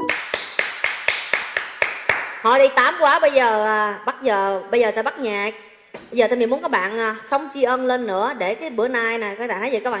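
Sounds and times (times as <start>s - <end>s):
person clapping hands: 0.0s - 2.4s.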